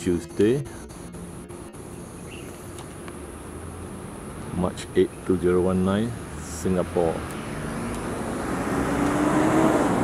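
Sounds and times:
engine drone with low hum: 0.0s - 10.0s.

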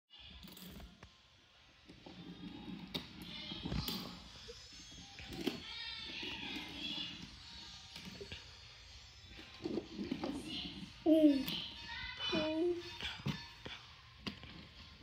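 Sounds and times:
child humming: 11.0s - 11.6s.

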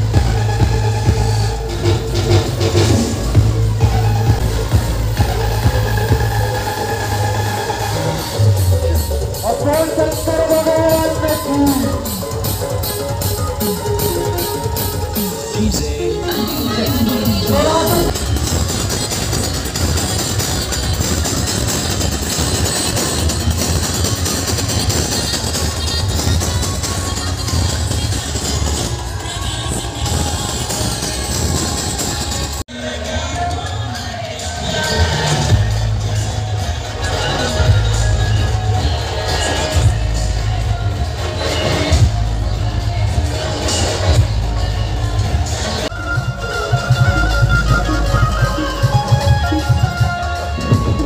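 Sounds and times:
loud electronic dance music: 0.0s - 51.0s.

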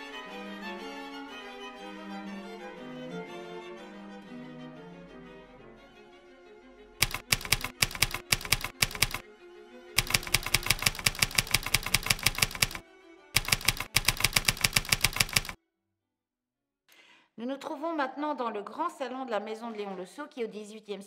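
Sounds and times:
typewriter keys clacking: 7.0s - 9.2s, 10.0s - 12.8s, 13.4s - 15.6s.

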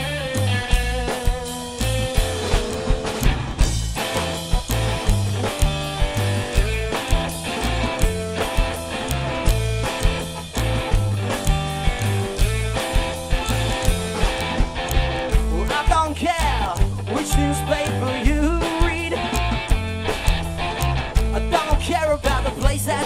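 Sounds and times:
drum kit beat: 0.0s - 23.0s
electric guitar: 0.0s - 23.0s
plucked walking bass line: 0.0s - 23.0s.

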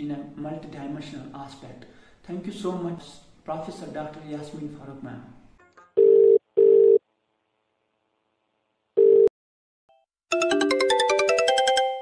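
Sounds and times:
telephone ringback tone: 6.0s - 7.0s, 9.0s - 9.3s.

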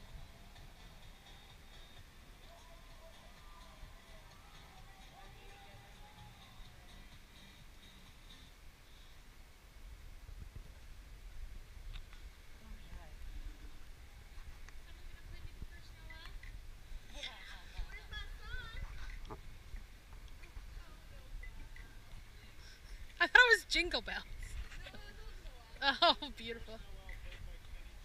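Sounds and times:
distant people talking: 2.2s - 7.3s, 12.6s - 28.0s.

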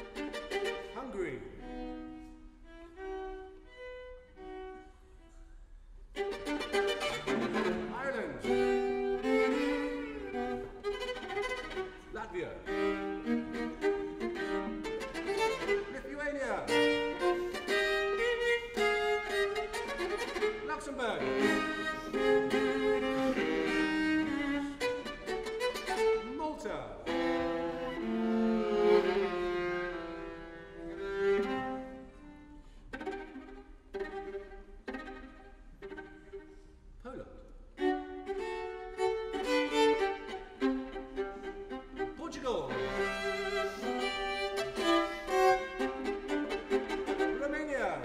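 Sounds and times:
solo viola played with bow: 0.0s - 36.9s, 37.7s - 48.0s.

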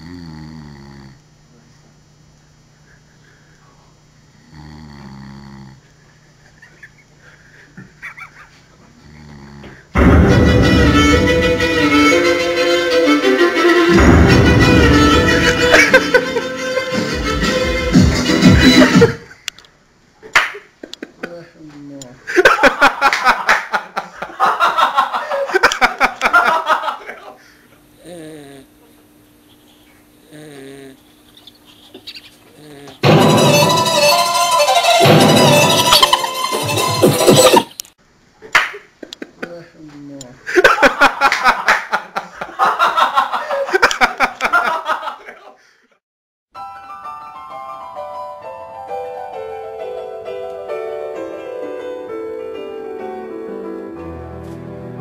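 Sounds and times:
man snoring: 0.0s - 1.2s, 4.4s - 5.9s, 9.0s - 10.0s, 28.0s - 28.7s, 30.2s - 31.0s
loud electronic music: 10.0s - 19.2s, 33.0s - 37.8s
man groaning: 28.0s - 28.8s, 30.3s - 31.0s.

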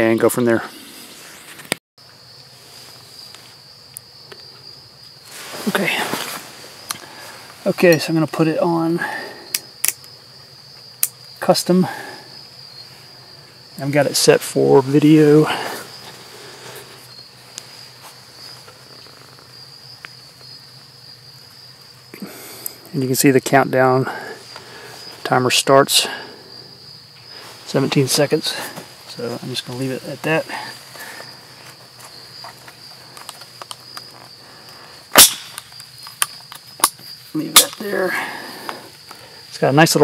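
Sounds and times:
crickets trilling: 0.0s - 40.0s
sharp loud click: 35.1s - 37.0s.

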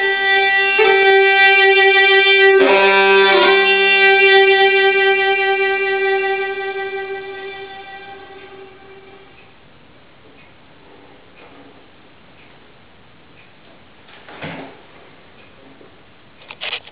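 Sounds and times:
violin note: 0.0s - 9.4s.

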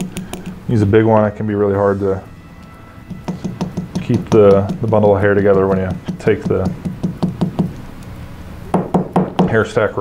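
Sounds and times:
hair stacker tapping on bench: 0.0s - 0.6s, 3.0s - 7.8s.

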